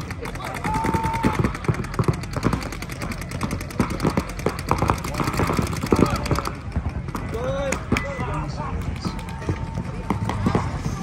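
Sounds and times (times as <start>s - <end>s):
paintball guns firing: 0.0s - 11.0s.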